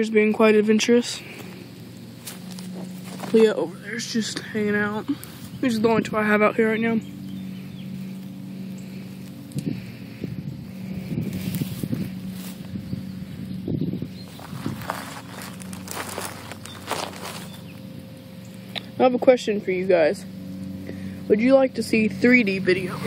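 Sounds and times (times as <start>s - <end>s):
rustling close to microphone: 0.0s - 19.0s
distant lawn mowers droning: 0.0s - 23.0s.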